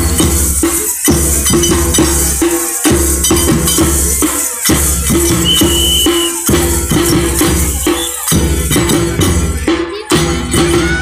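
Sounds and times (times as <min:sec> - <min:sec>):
metal jingles clashing in rhythm: 0:00.0 - 0:09.7
music with a steady beat: 0:00.0 - 0:11.0
high steady tone: 0:01.5 - 0:08.5.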